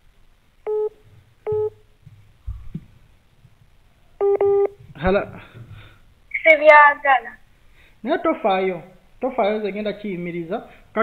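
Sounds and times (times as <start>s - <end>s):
telephone line beeps: 0.7s - 0.9s, 1.5s - 1.8s, 4.2s - 4.8s.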